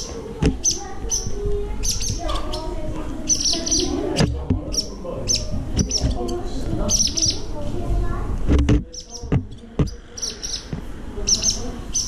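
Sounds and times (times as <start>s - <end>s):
swallows chirping: 0.0s - 7.6s, 8.9s - 12.0s.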